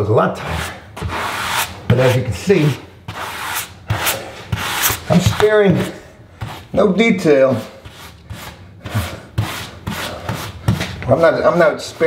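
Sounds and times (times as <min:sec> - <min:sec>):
grout float scraping tile: 0:00.3 - 0:12.0.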